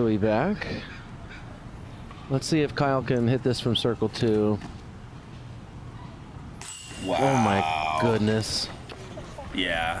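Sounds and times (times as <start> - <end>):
faint outdoor background: 0.0 - 10.0
disc golf basket chains jingling: 6.6 - 8.8.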